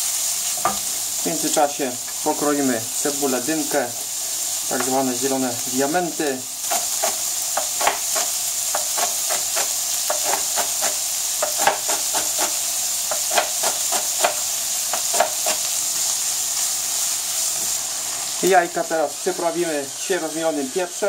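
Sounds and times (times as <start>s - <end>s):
food sizzling in a pan: 0.0s - 21.0s
knife chopping on cutting board: 6.7s - 14.4s, 15.0s - 15.6s.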